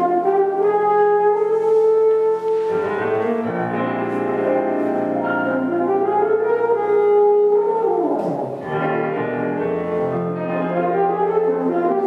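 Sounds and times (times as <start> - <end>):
french horn playing jazz: 0.0 - 12.0.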